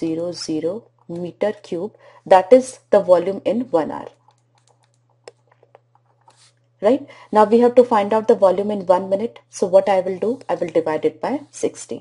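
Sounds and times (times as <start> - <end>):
stylus tapping on tablet: 4.0 - 6.4.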